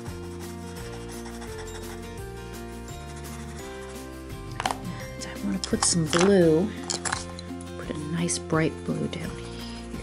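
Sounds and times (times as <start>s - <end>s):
pencil rubbing on cardstock: 0.0s - 2.2s, 2.8s - 4.2s
soft background music: 0.0s - 10.0s.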